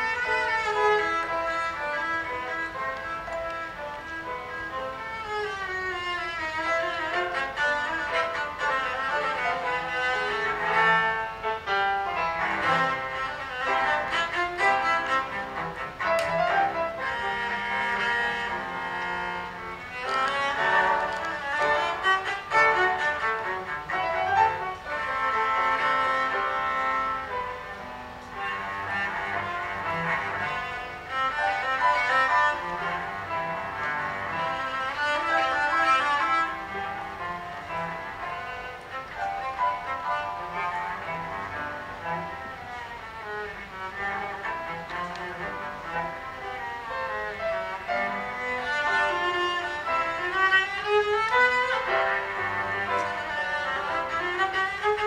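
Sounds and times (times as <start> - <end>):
bowed cello solo: 0.0 - 55.0
grand piano accompaniment: 0.0 - 55.0.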